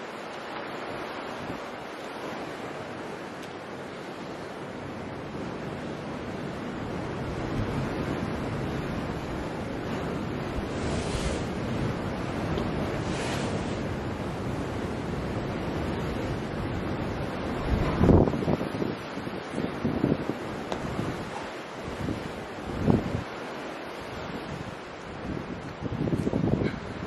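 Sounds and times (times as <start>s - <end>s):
sea surf washing: 0.0s - 27.0s
wind on microphone: 0.0s - 27.0s.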